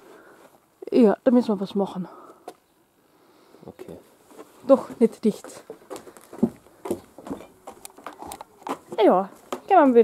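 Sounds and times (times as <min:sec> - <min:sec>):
footsteps on wooden floorboards: 0:04.3 - 0:10.0.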